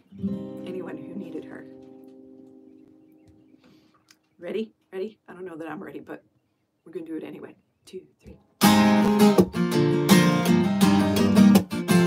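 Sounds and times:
acoustic guitar strumming: 0.0 - 3.6, 8.6 - 12.0.

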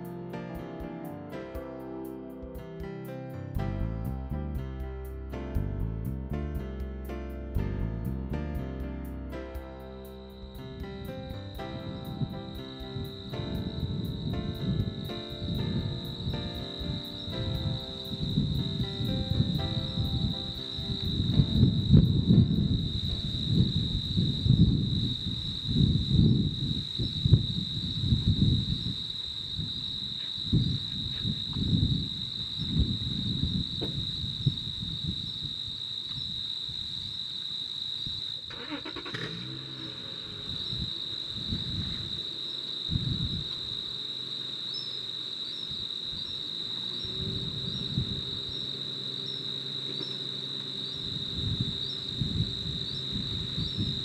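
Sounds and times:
low rumble: 3.4 - 29.0, 46.2 - 54.0
insect chorus buzzing: 7.8 - 54.0.

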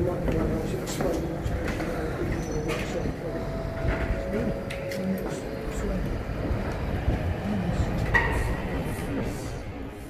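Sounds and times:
faint voices: 0.0 - 10.0
underground train rumbling in tunnel: 0.0 - 10.0.

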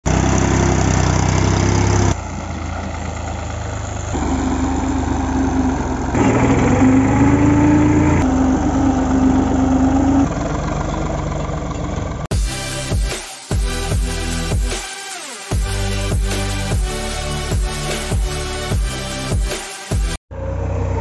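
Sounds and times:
diesel tractor engines running: 0.0 - 14.9.

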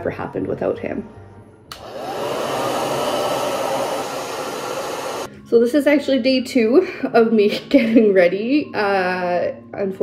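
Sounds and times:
hair dryer blowing: 1.7 - 5.3.

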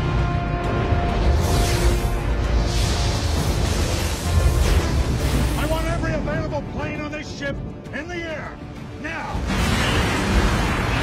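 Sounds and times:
dramatic film score: 0.0 - 11.0.

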